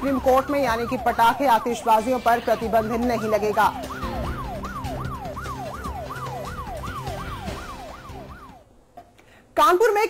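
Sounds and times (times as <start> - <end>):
wailing siren-like tone: 0.0 - 8.7
low musical drone: 2.1 - 8.6.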